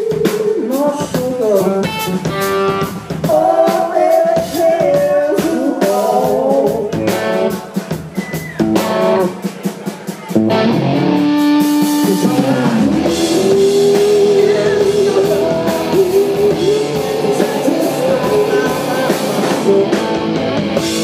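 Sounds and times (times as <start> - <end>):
person singing: 0.0 - 7.8, 11.8 - 21.0
drum kit: 0.0 - 21.0
electric guitar: 1.5 - 3.3, 6.7 - 8.0, 8.6 - 9.5, 10.3 - 21.0.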